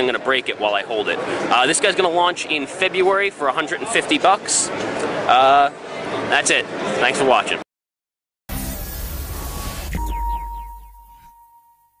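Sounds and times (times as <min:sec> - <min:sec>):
electronic logo sting: 0:08.5 - 0:11.8.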